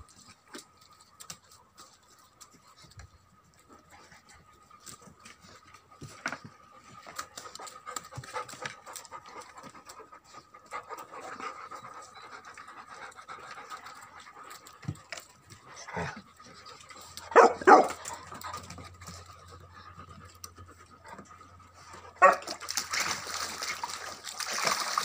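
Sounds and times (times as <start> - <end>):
puppies lapping water: 0.0 - 25.0.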